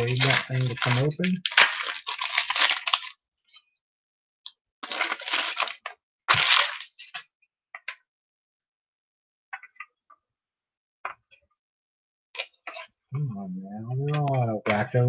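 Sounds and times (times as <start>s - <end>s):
wrapper crinkling and tearing: 0.0s - 3.2s, 4.8s - 7.2s.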